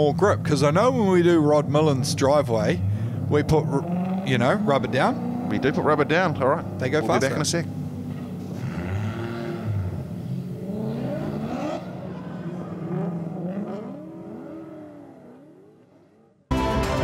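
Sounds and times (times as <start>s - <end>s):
car engines revving: 0.0s - 16.5s
music: 16.5s - 17.0s.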